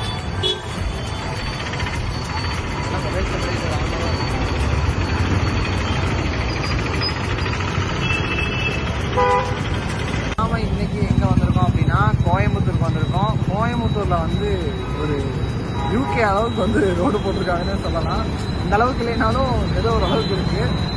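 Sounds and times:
car and scooter engines passing: 0.0 - 20.9
vehicle horn toot: 0.4 - 0.8, 8.0 - 9.6.

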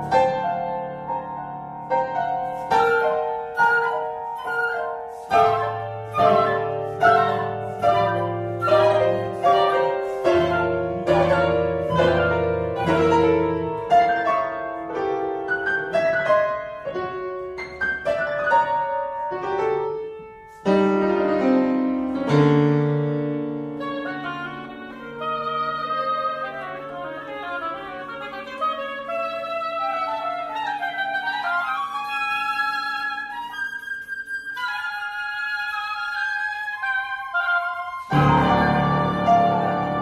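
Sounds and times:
loud piano chords: 0.0 - 32.1, 32.7 - 40.0
chamber quartet playing: 3.6 - 13.8, 23.8 - 31.7, 36.8 - 40.0.

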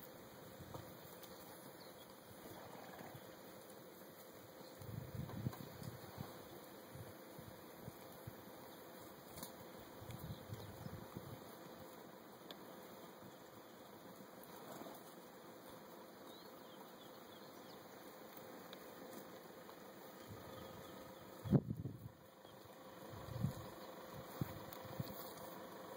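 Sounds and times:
insects humming: 0.0 - 25.9.

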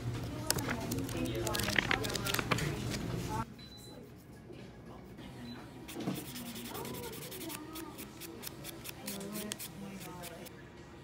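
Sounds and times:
nail file rubbing toenails: 6.0 - 10.5.

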